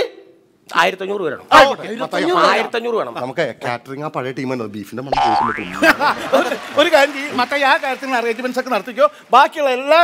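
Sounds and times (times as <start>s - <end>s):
men talking: 0.7s - 10.0s
comedy boing sound effect: 5.1s - 6.0s.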